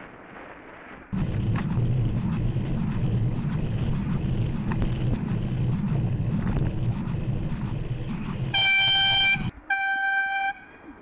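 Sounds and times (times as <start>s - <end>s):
wind and road rumble: 0.0s - 9.7s
horn blasts: 8.5s - 10.8s.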